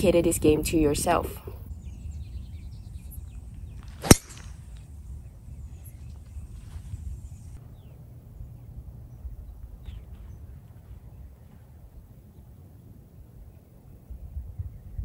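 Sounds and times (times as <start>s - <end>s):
low background rumble: 0.0s - 15.0s
golf club striking ball: 4.0s - 4.6s.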